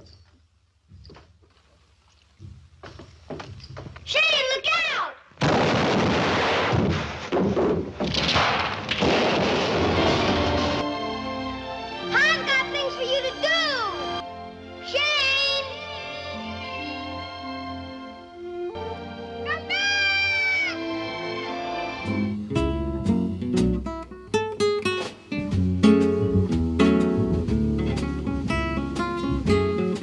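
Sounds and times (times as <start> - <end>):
loud gunshot with echo: 5.4 - 7.3, 8.0 - 10.8
film score music: 9.9 - 30.0
boy's long high-pitched call: 19.5 - 20.8.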